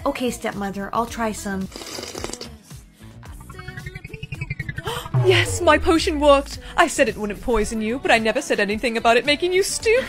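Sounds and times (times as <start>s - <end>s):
sipping through a straw: 1.7s - 2.6s
fast low pulsing: 3.2s - 8.0s
rising chiming notes: 3.3s - 7.1s.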